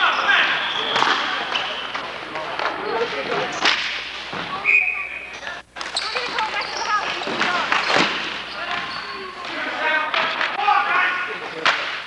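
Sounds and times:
players calling out: 4.5s - 11.7s.

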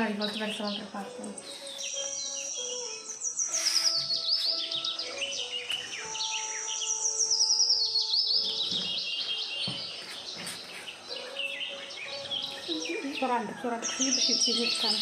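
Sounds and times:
songbird trilling: 0.0s - 15.0s.

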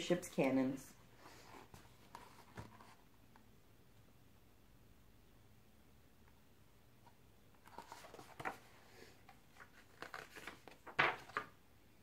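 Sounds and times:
book page turning: 7.6s - 11.5s
paper rustling: 7.6s - 11.5s.

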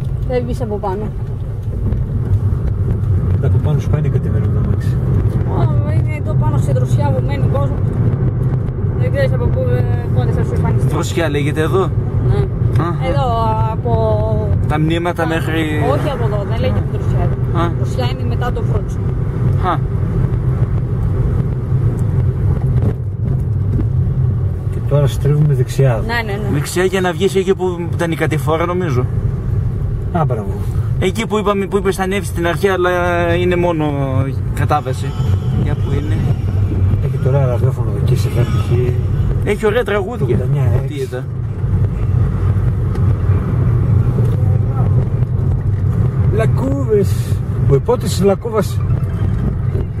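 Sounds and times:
car engine and road noise: 0.0s - 50.0s.

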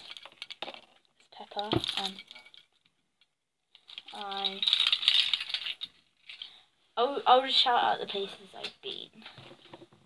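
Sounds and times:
faint rattle: 1.7s - 6.6s.

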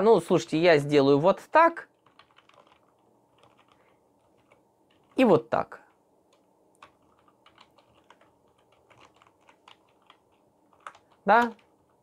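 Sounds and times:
keyboard typing: 1.9s - 5.4s, 6.3s - 12.0s.

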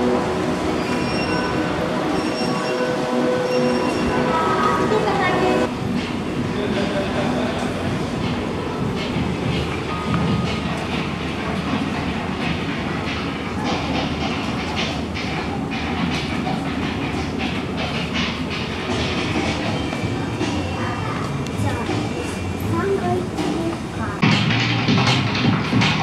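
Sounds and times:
electric train rumbling on rails: 0.0s - 26.0s.

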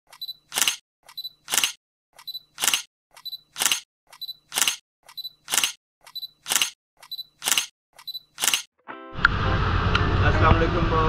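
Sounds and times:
camera focus beep: 0.1s - 8.7s
camera shutter release: 0.5s - 0.8s, 1.5s - 1.8s, 2.6s - 2.9s, 3.6s - 3.8s, 4.5s - 4.8s, 5.5s - 5.8s, 6.4s - 6.8s, 7.4s - 7.7s, 8.4s - 8.7s.

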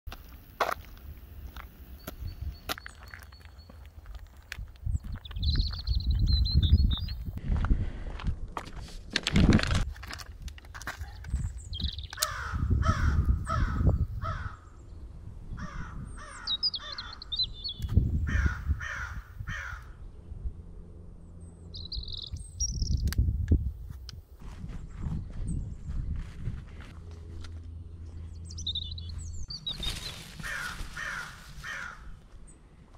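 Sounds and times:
small birds chirping: 1.4s - 7.4s, 10.7s - 18.7s, 21.2s - 23.4s, 28.0s - 32.6s
crow cawing: 12.2s - 14.7s, 15.6s - 17.3s, 18.3s - 20.0s, 30.4s - 32.2s.

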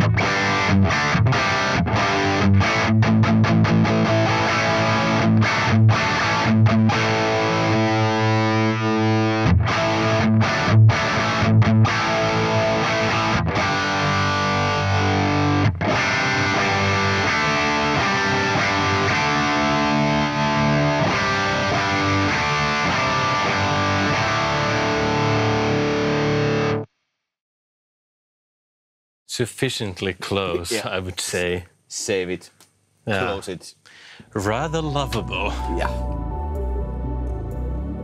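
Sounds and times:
distorted electric guitar: 0.0s - 26.9s.

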